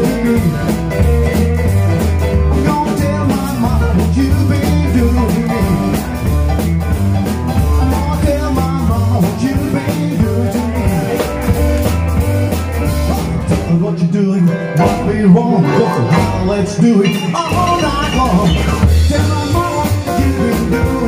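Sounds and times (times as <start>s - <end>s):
rockabilly band playing live: 0.0s - 21.0s
upright bass: 0.0s - 21.0s.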